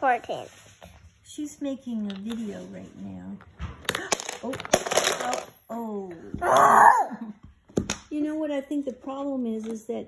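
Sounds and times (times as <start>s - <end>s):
child whining cry: 6.4s - 7.3s.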